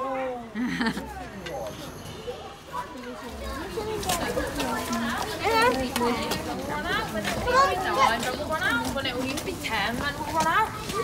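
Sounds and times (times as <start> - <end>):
young children talking: 0.0 - 11.0.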